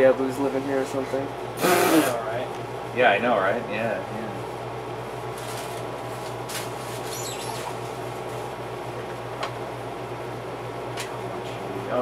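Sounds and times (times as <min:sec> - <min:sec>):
indoor hum and hiss: 0:00.0 - 0:12.0
brief high squeak: 0:07.1 - 0:07.7.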